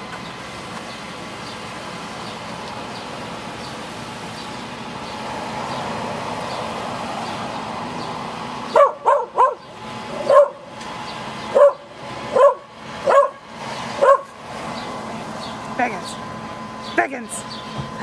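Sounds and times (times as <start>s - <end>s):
truck engine humming: 0.0s - 18.0s
small dog barking: 8.7s - 10.6s, 11.5s - 13.4s, 14.0s - 14.4s.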